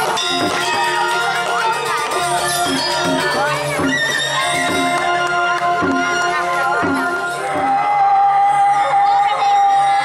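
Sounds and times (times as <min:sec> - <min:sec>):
gamelan playing: 0:00.0 - 0:08.0.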